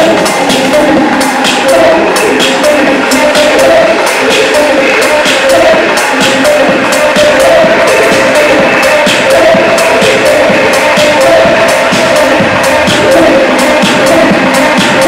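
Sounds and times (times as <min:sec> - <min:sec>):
techno through club sound system: 0:00.0 - 0:15.0.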